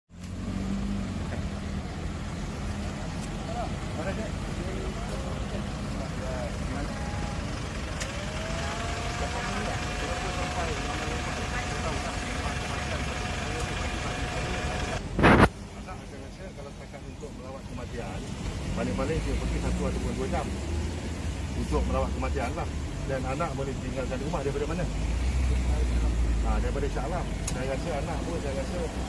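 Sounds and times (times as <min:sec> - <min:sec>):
idling car engines: 0:00.1 - 0:29.0
road traffic: 0:00.1 - 0:29.0
faint voices: 0:02.4 - 0:20.6.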